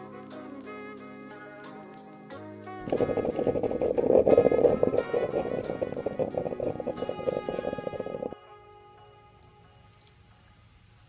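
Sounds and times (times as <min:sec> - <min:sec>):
moka pot gurgling: 0:02.8 - 0:08.4
music with ticking beat: 0:02.8 - 0:08.5.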